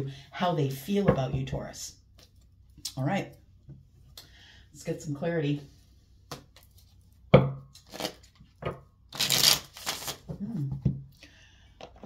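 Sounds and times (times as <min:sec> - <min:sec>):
cards riffling: 0:09.1 - 0:10.3.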